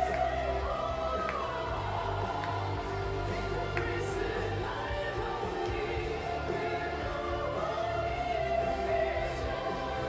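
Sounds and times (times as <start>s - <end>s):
bass line: 0.0s - 10.0s.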